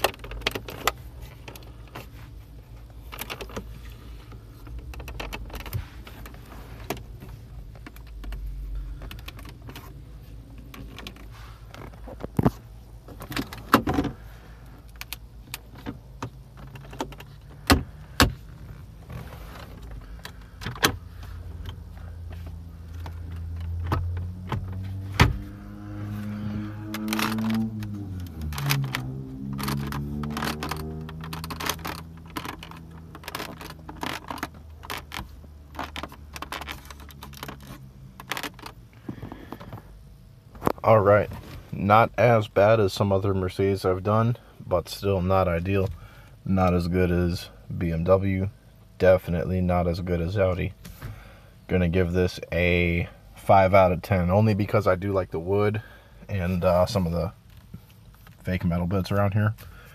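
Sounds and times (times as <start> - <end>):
clicks and knocks on car interior trim: 0.0 - 14.2, 14.8 - 26.1, 26.8 - 39.9
steady low hum: 0.0 - 59.9
droning hum rising in pitch: 21.4 - 32.3.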